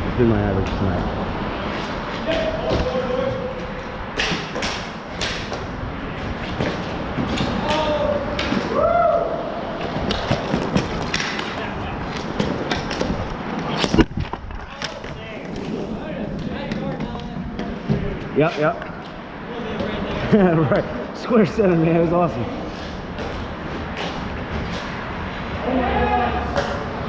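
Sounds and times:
hockey sticks clacking: 1.7s - 8.8s, 9.8s - 18.9s
players shouting: 7.5s - 10.0s, 25.6s - 27.0s.

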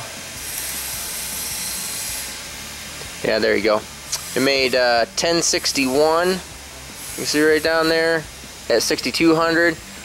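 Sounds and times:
steady hissing noise: 0.0s - 10.0s.

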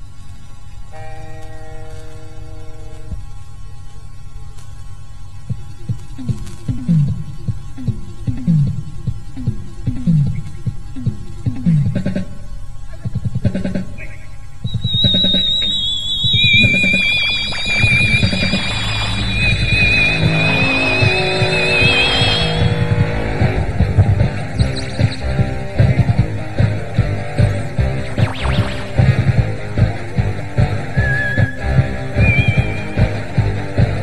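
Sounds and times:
high wavering tones: 14.7s - 25.4s, 27.6s - 29.6s
bass guitar line: 16.4s - 34.0s
instrumental punk rock music: 17.9s - 34.0s.

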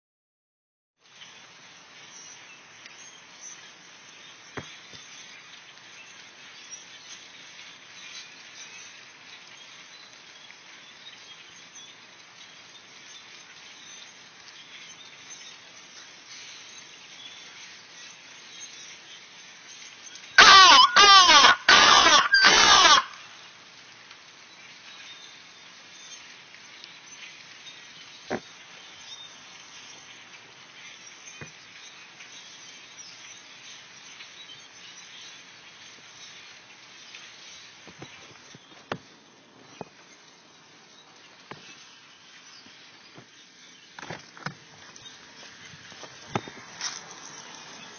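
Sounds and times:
flock of birds calling: 20.3s - 23.4s
distorted megaphone blast: 20.4s - 23.2s.

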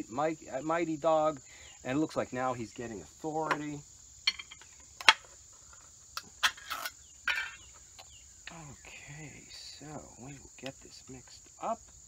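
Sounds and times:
high insect trill: 0.0s - 12.0s.

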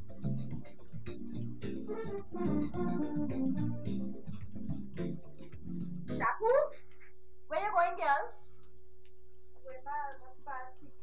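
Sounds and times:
background music: 0.0s - 6.9s.

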